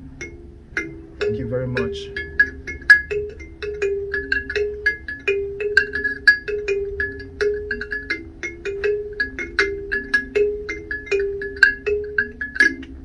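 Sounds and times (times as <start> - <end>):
kalimba melody: 0.0 - 13.0.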